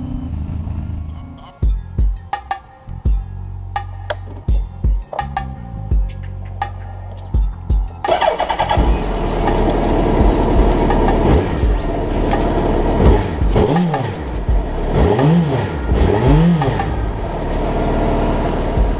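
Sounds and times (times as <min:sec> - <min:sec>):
motorcycle engine starting and revving: 0:00.0 - 0:01.4, 0:08.0 - 0:18.9.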